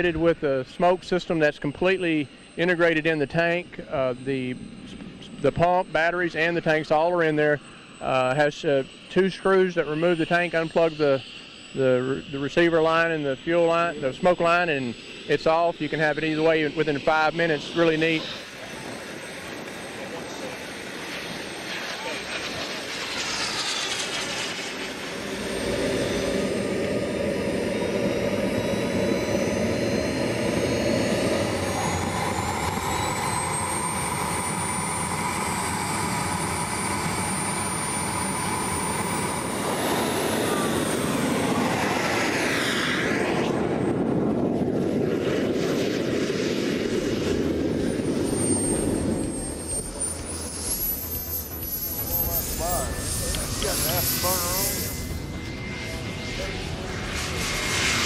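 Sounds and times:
jet turbine high whine: 0:00.0 - 0:58.0.

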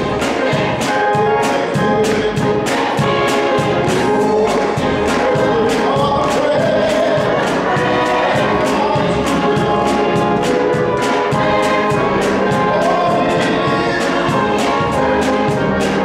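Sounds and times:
gospel choir singing: 0:00.0 - 0:16.0
organ accompaniment: 0:00.0 - 0:16.0
rhythmic hand clapping: 0:00.0 - 0:16.0.

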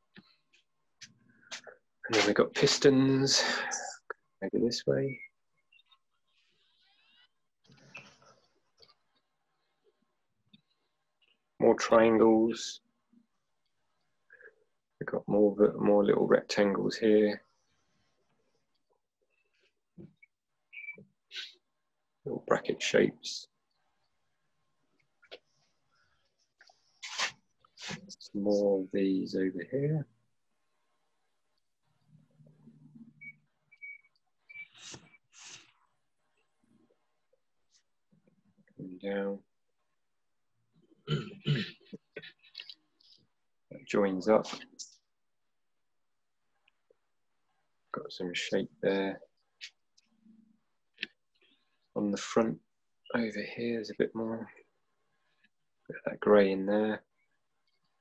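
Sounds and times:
quiet breaths through nose: 0:34.6 - 0:35.9.

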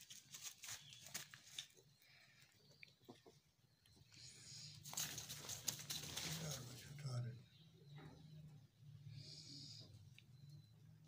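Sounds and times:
rustling in grass: 0:00.0 - 0:01.7.

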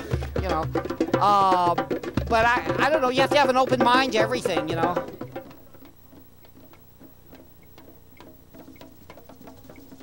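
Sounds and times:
faint low drum tones: 0:00.0 - 0:10.0.

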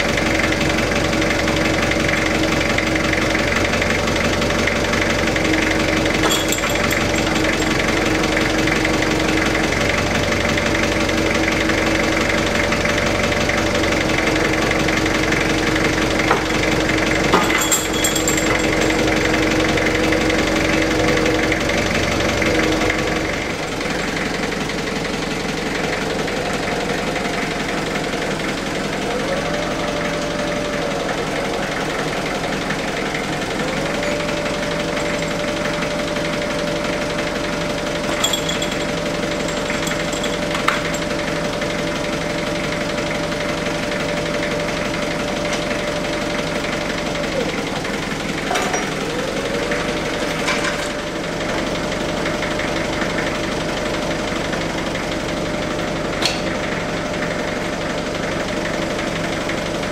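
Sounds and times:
forklift engine running: 0:00.0 - 0:59.9.

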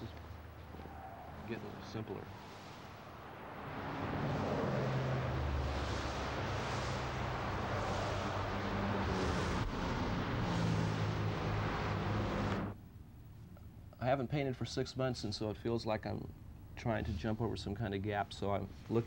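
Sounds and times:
road traffic passing: 0:00.0 - 0:12.8.

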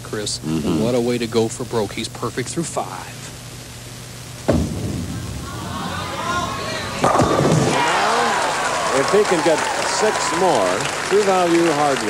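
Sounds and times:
bowling pins crashing: 0:04.4 - 0:08.5
crowd cheering: 0:05.1 - 0:12.0.

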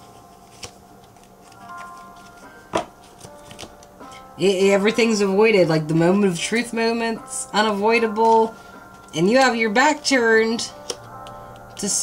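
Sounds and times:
quiet background music: 0:00.0 - 0:12.0
cards clicking and tapping: 0:00.4 - 0:03.9, 0:10.7 - 0:12.0
card snapping: 0:00.5 - 0:03.9, 0:10.8 - 0:11.4.

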